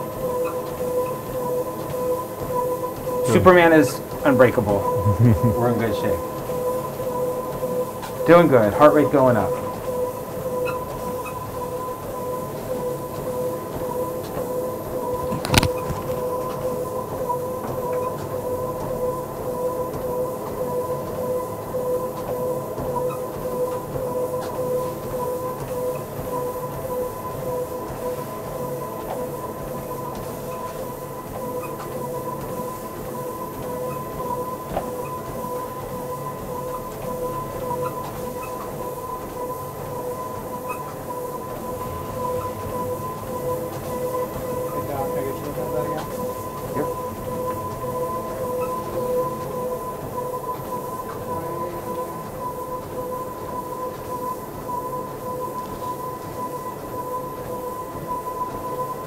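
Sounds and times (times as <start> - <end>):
treadmill motor whine: 0.0 - 59.0.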